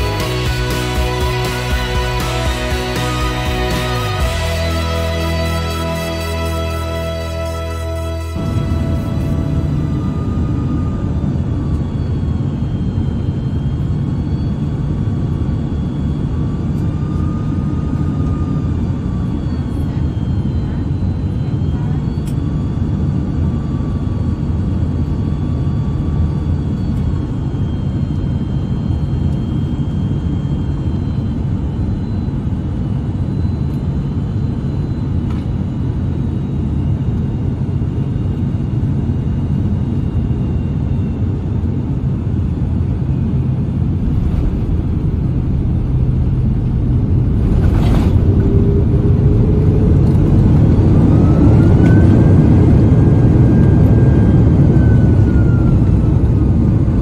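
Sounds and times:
aircraft engine and airflow rumble: 0:00.0 - 0:57.0
jet engine whine: 0:00.0 - 0:57.0.

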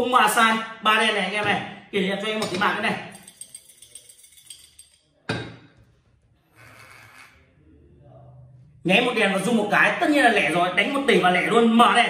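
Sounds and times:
chips rattling under bowl: 0:03.1 - 0:05.0.

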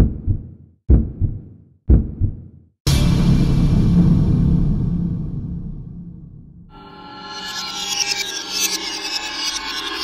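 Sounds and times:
heartbeat thumps: 0:00.0 - 0:02.6.

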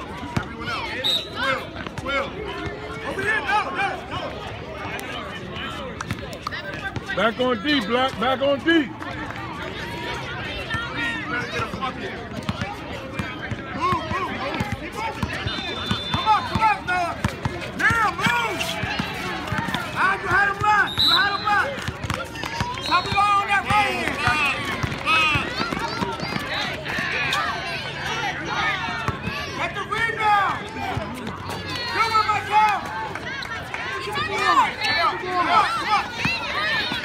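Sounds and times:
basketball bouncing on court: 0:11.6 - 0:20.8, 0:21.6 - 0:27.1
people shouting and calling: 0:13.2 - 0:37.0
running footsteps: 0:15.2 - 0:27.5.

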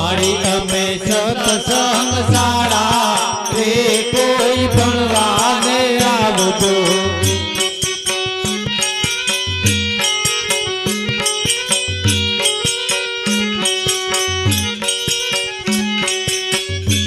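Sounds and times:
man singing: 0:00.0 - 0:07.9
harmonium: 0:00.0 - 0:17.0
rhythmic percussion: 0:00.0 - 0:17.0.

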